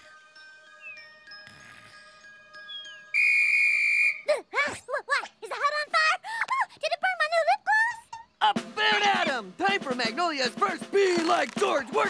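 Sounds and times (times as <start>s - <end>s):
soft tinkling lullaby music: 0.0s - 3.2s
loud whistle blast: 3.2s - 4.3s.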